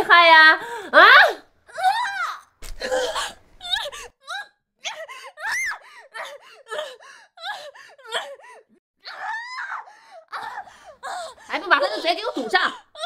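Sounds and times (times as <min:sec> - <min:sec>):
woman screaming: 0:01.0 - 0:06.3, 0:09.0 - 0:10.7.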